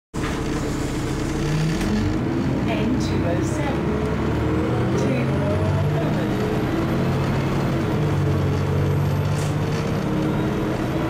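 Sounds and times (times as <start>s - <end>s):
bus diesel engine accelerating: 0.2s - 11.0s.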